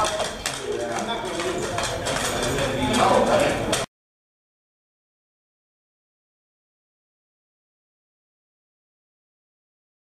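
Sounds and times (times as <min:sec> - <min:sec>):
hard clacks and knocks: 0:00.0 - 0:03.9
people talking: 0:00.0 - 0:03.9.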